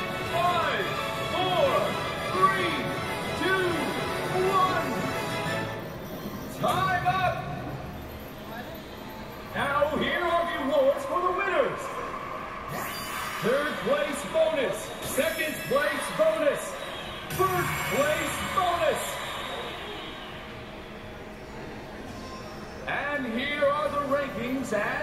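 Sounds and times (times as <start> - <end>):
slot machine tones: 0.0 - 11.8, 12.7 - 19.7.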